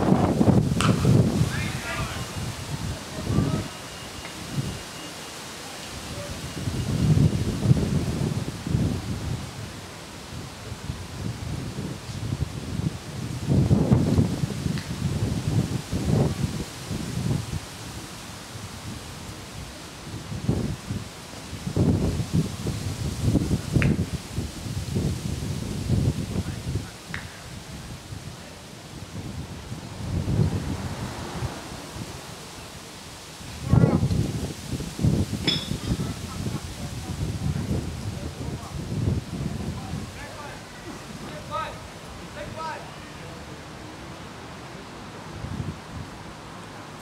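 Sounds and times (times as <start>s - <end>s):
wind buffeting microphone: 0.0s - 4.9s, 5.9s - 42.8s, 44.8s - 47.0s.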